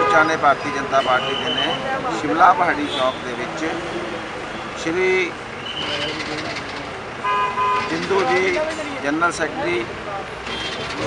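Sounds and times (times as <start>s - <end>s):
low traffic hum: 0.0s - 11.0s
vehicle horn: 7.2s - 8.1s, 10.5s - 11.0s.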